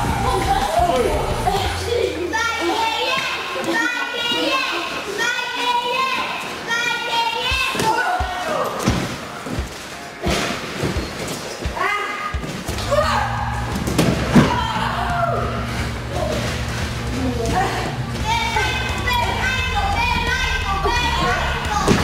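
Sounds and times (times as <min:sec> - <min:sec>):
crowd shouting: 0:00.0 - 0:04.6, 0:12.3 - 0:22.0.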